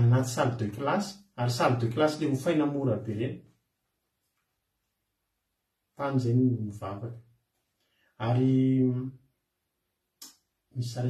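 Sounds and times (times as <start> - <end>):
man chanting: 8.2 - 9.1.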